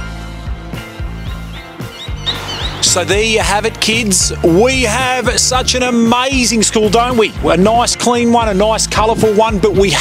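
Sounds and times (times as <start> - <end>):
man's voice: 2.7 - 10.0.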